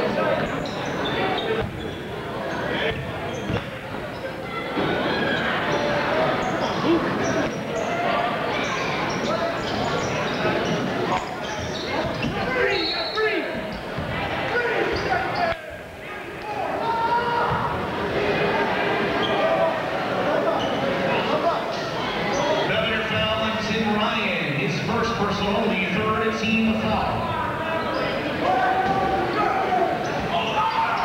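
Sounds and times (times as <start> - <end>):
crowd chatter: 0.0 - 31.0.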